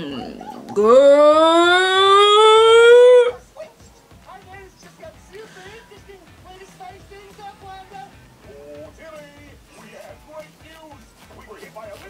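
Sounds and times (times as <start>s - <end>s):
woman howling in shock: 0.0s - 3.4s.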